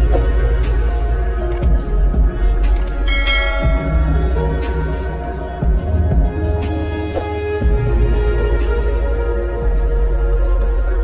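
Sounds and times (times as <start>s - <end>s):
slowed lofi music: 0.0s - 9.6s
bright bell-like chime: 3.1s - 4.5s.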